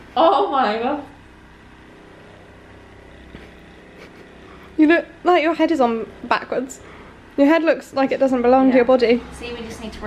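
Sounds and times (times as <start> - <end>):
massage gun motor hum: 0.0 - 10.0.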